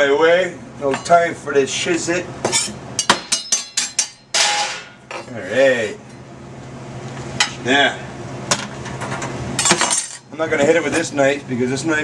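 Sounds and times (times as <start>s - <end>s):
utensils clattering on counter: 9.0s - 10.3s.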